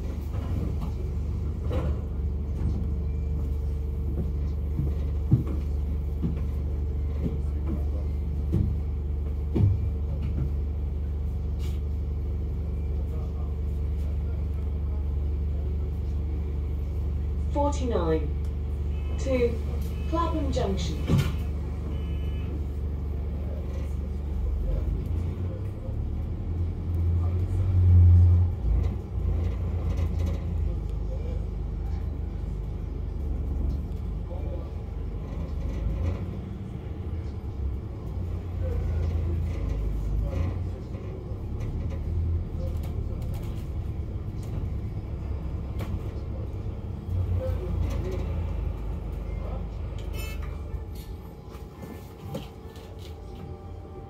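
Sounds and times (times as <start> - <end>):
bus engine rumble: 0.0 - 54.0.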